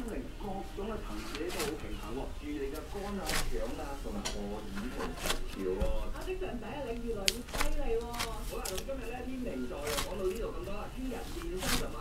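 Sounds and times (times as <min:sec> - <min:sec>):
hands kneading dough: 0:00.0 - 0:12.0
people talking quietly: 0:00.0 - 0:12.0.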